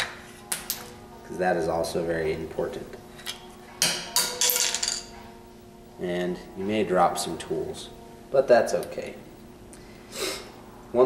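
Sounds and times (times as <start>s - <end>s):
metal parts clinking and clanking: 4.2s - 5.1s.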